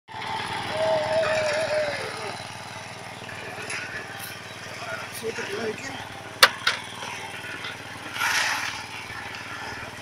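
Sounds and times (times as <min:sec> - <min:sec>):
small engine running: 0:00.1 - 0:10.0
wavering high tone: 0:00.7 - 0:02.4.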